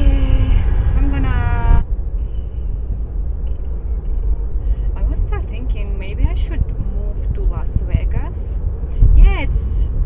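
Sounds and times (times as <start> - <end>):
person speaking: 0.0 - 1.8
car road rumble: 0.0 - 10.0.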